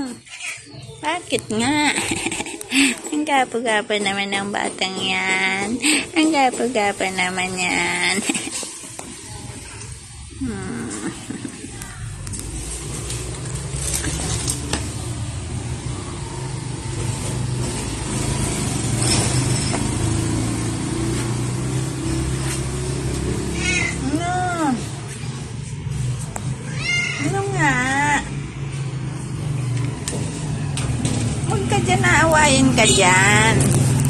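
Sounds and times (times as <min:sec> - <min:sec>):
cat meowing: 0:23.6 - 0:24.2, 0:26.7 - 0:27.3.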